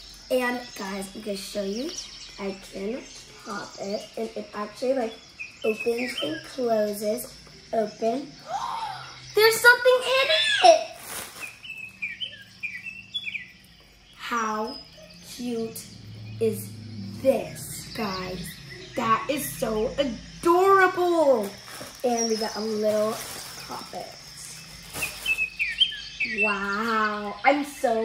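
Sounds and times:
faint steady hum: 0.0 - 28.0
high chirps: 0.0 - 28.0.

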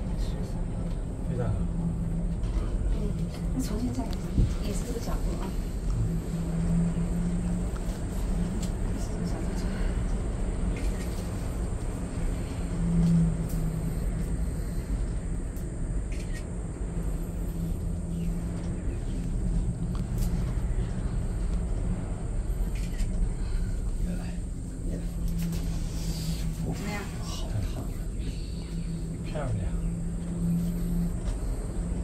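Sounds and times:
cable car low rumble: 0.0 - 32.0
low hum: 0.0 - 32.0.

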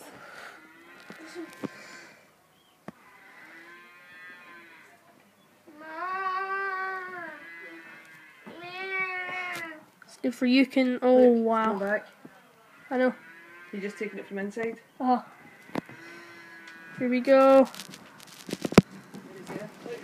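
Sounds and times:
cattle mooing: 0.5 - 2.1, 3.0 - 5.0, 5.9 - 9.6, 12.6 - 14.5, 15.1 - 17.6.

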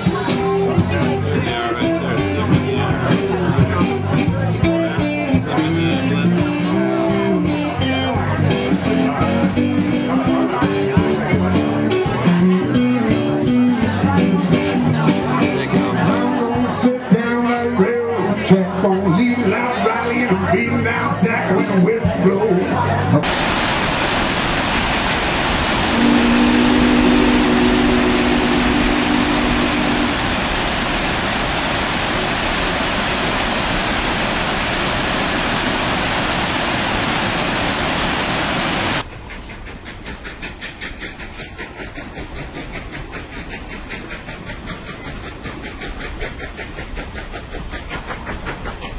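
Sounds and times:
waterfall rushing: 23.2 - 39.1
pulsing hiss: 23.2 - 48.9.

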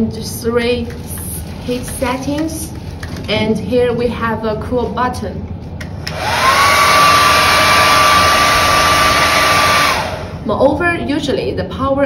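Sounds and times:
hair dryer blowing: 6.0 - 10.5.

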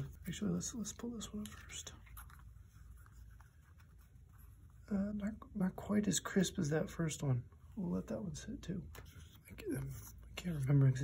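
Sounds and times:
paper label rustling: 0.0 - 4.8.

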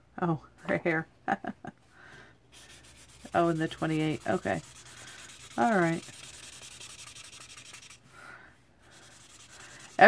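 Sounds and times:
marker scribbling on paper: 2.6 - 8.0, 8.9 - 10.0.

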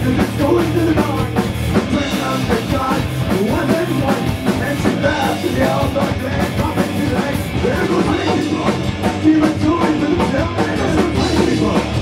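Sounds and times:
driving drum kit: 0.0 - 12.0
electric guitars: 0.0 - 12.0.

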